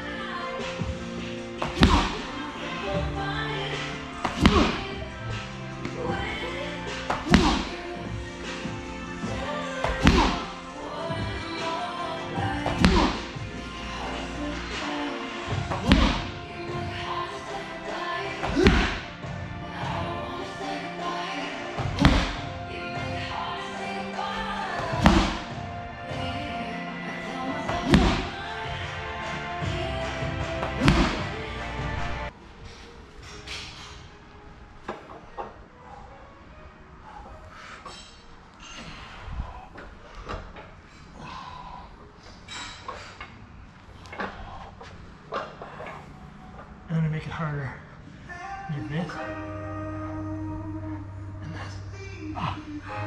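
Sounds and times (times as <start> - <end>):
background music: 0.0 - 53.0
medicine ball thudding on floor: 1.6 - 2.2, 4.2 - 4.8, 7.1 - 7.7, 9.8 - 10.4, 12.6 - 13.2, 15.7 - 16.3, 18.4 - 19.0, 21.8 - 22.4, 24.8 - 25.5, 27.7 - 28.3, 30.6 - 31.3.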